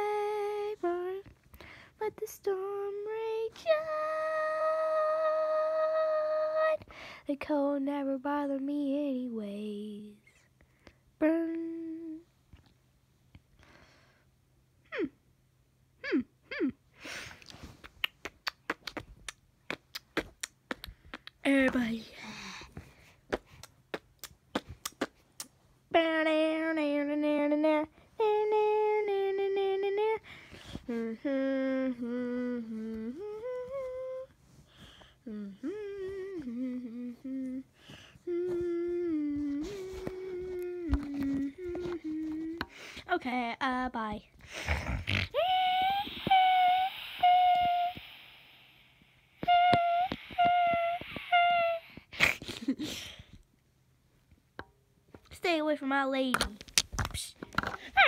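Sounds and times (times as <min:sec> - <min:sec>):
person humming: 0:03.6 - 0:06.8, 0:11.2 - 0:12.3, 0:14.9 - 0:15.2, 0:16.0 - 0:16.8, 0:26.9 - 0:30.2, 0:30.8 - 0:34.4, 0:35.2 - 0:42.9, 0:44.5 - 0:52.9.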